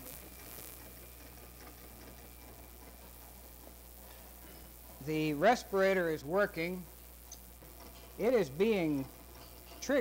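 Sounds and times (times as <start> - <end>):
low mains hum: 0.0 - 10.0
tape hiss: 0.0 - 10.0.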